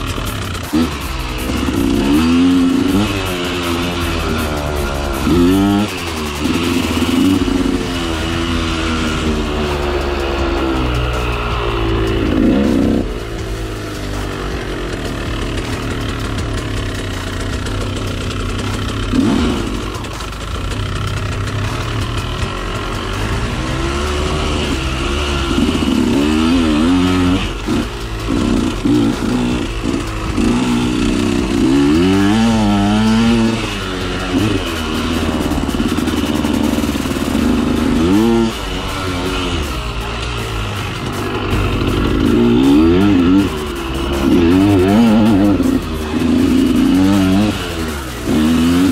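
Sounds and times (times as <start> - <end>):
dirt bike engine revving: 0.0 - 48.9.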